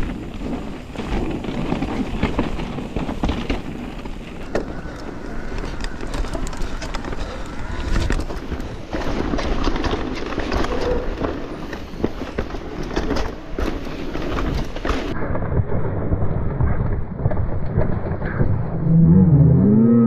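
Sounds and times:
bike rattling over roots: 0.0s - 15.2s
tyre noise on dirt: 0.0s - 15.2s
wind rumble on microphone: 0.0s - 20.0s.

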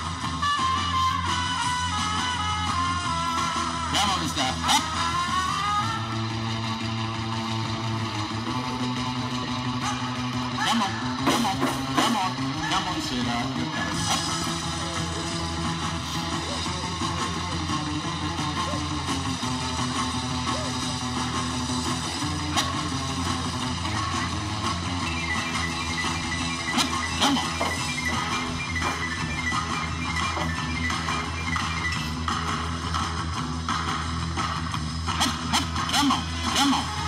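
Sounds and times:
guitar music: 0.0s - 37.0s.

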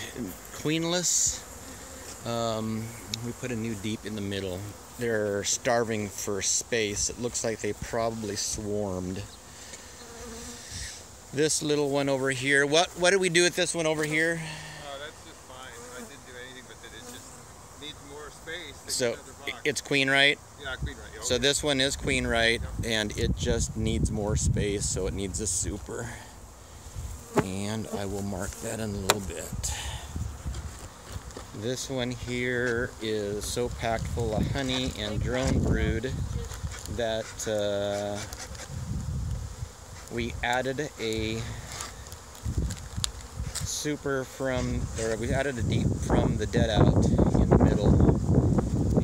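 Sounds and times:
bees buzzing: 0.0s - 23.1s, 24.8s - 49.0s.

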